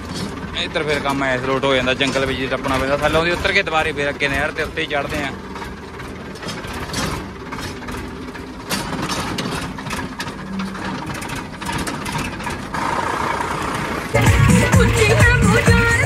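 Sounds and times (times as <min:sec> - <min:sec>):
disc harrow knocking and rattling: 0:00.0 - 0:16.0
tractor diesel engine running: 0:00.0 - 0:16.0.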